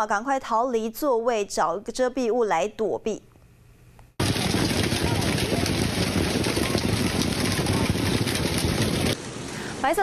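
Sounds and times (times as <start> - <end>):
hail pelting down: 4.2 - 9.2.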